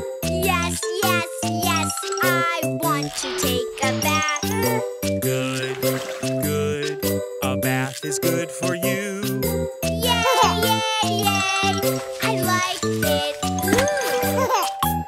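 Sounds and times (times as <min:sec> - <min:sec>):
bouncy chiming accompaniment: 0:00.0 - 0:15.0
voices singing nursery rhyme: 0:00.3 - 0:13.7.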